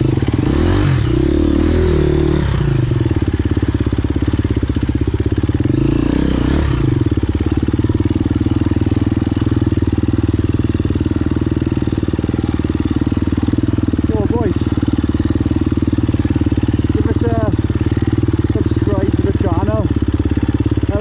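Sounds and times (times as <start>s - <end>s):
dirt bike engine running: 0.0s - 21.0s
person's voice: 14.0s - 14.7s, 16.9s - 17.6s, 18.5s - 19.9s.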